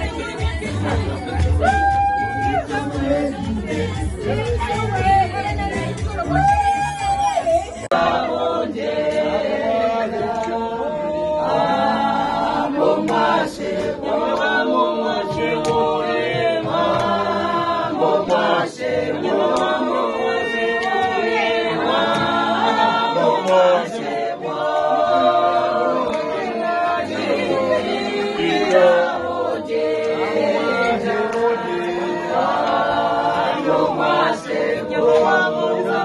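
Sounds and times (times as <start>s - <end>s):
group singing in harmony: 0.0s - 6.4s, 7.0s - 36.0s
hand claps: 10.2s - 10.6s, 13.0s - 14.6s, 15.5s - 18.6s, 19.4s - 21.4s, 22.0s - 24.9s, 26.1s - 26.3s, 27.9s - 29.1s, 29.7s - 33.5s, 35.0s - 35.5s.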